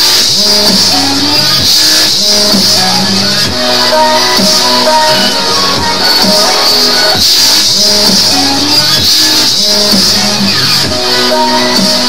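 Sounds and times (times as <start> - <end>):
dubstep music: 0.0 - 12.0.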